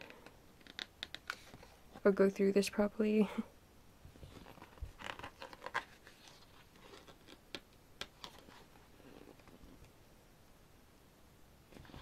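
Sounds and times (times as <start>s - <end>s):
paper pages rustling: 4.2s - 9.8s.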